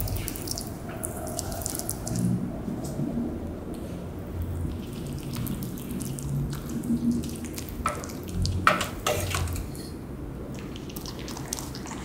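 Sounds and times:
rabbit wet chewing: 0.0 - 3.0, 3.8 - 12.0.

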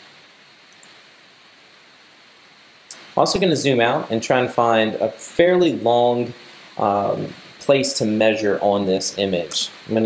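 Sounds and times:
faint microphone hiss: 0.0 - 10.0.

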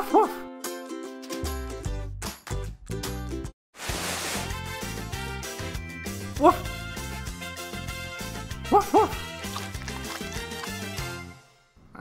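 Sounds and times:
cheerful background music: 0.0 - 11.7.

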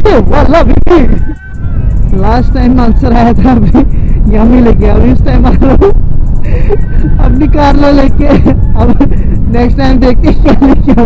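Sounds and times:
man talking: 0.0 - 1.3
heavy wind rush: 0.0 - 11.0.

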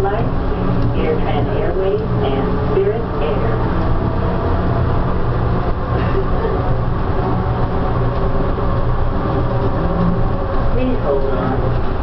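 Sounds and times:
train running hum: 0.0 - 12.0.

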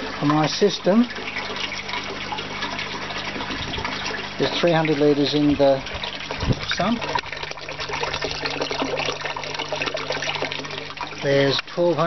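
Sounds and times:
water pouring into a tank: 0.0 - 12.0.

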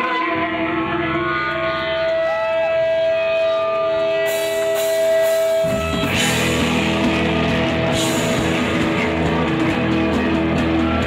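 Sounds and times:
electric guitar feedback: 0.0 - 11.0.

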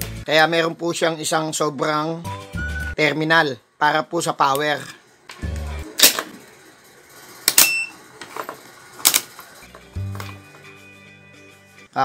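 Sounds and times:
soft background music: 0.0 - 3.2, 9.0 - 12.0.

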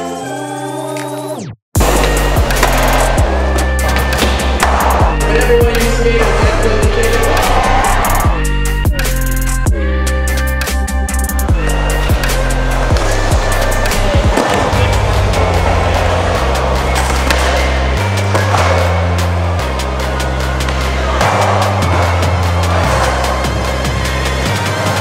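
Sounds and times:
music with heavy bass: 1.8 - 25.0
skateboard wheels rolling on concrete: 11.6 - 25.0.

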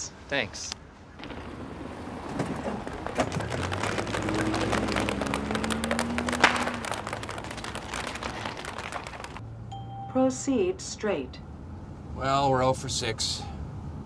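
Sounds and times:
car engine: 1.6 - 9.7
tin cans clattering on road: 2.3 - 9.4.

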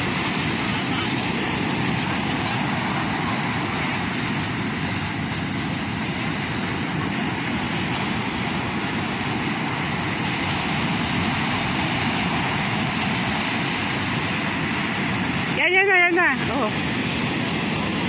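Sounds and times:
ocean surf breaking on beach: 0.0 - 18.0.

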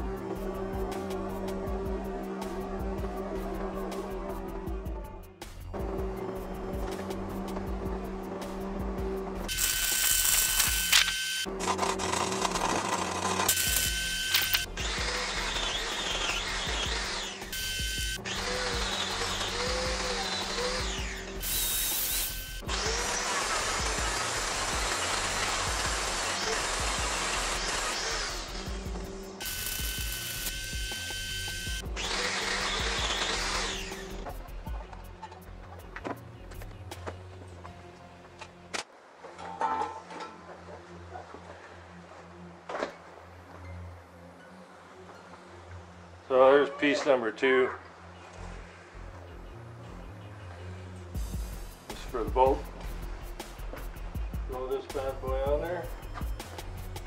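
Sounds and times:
background music with steady beat: 0.0 - 10.8, 13.5 - 38.8, 48.2 - 57.0
angle grinder grinding steel: 9.5 - 34.3.

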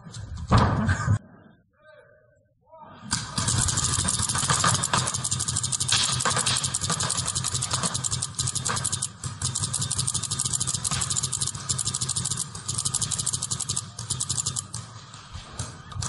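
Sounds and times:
paintball markers firing rapidly: 3.1 - 16.0.

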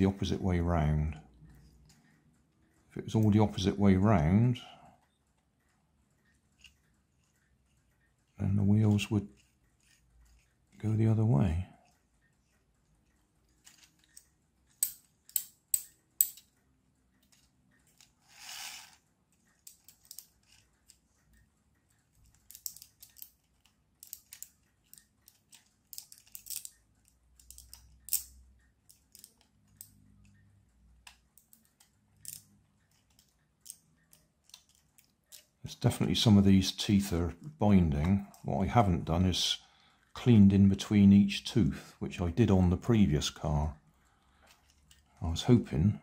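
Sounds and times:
plastic gears clicking and rubbing: 5.3 - 30.4, 31.0 - 35.6, 44.4 - 45.5.

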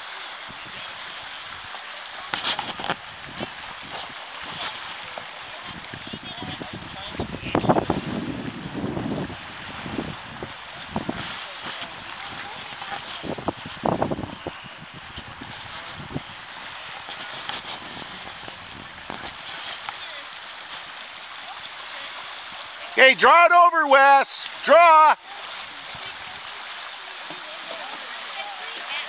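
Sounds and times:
river current rushing: 0.0 - 29.0
wind gusting on microphone: 5.7 - 19.4.

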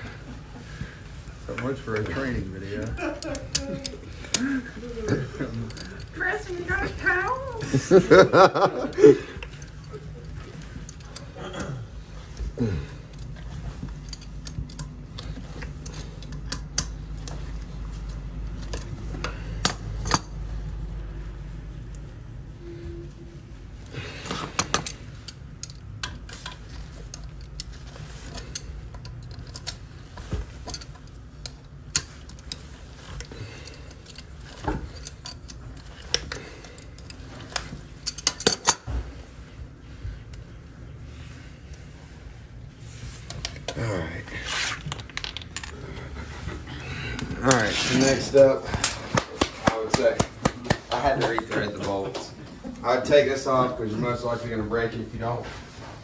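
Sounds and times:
pliers scraping metal bolts: 18.6 - 20.4, 30.6 - 38.9.

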